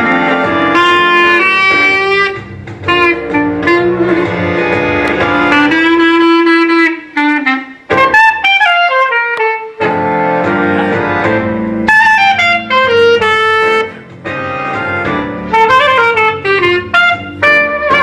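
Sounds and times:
sax-like melody: 0:00.0 - 0:18.0.

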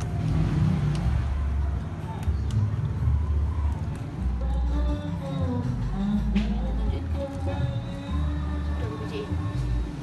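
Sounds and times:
faint voices: 0:00.0 - 0:09.9.

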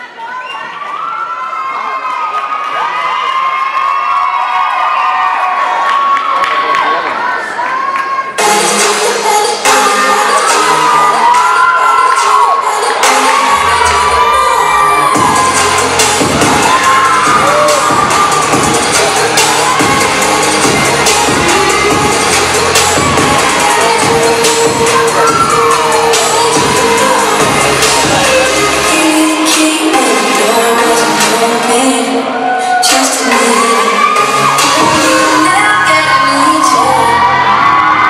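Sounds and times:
crowd cheering and screaming: 0:00.0 - 0:38.0
loud dance music: 0:06.6 - 0:38.0
heavy bass beat: 0:12.9 - 0:31.7, 0:33.5 - 0:36.2.

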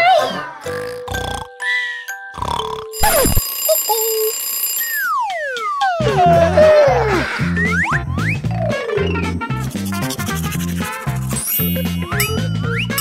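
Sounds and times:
short held beeps: 0:03.0 - 0:05.1
children's video music: 0:05.2 - 0:13.0.

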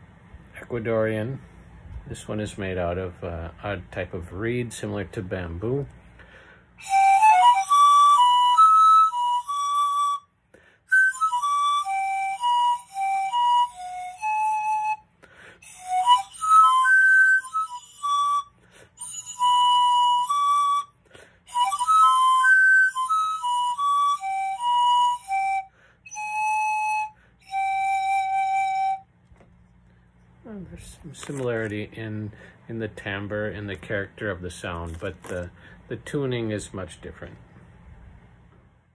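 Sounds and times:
pan flute melody: 0:06.8 - 0:29.2.

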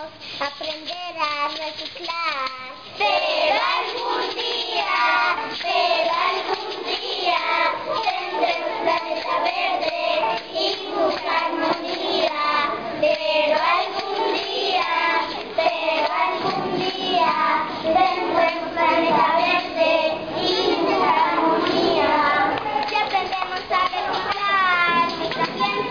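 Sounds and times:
children singing: 0:03.0 - 0:25.9.

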